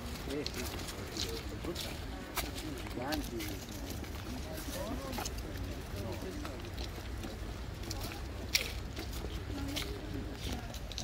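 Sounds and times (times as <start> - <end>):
footsteps on paved path: 0.0 - 11.0.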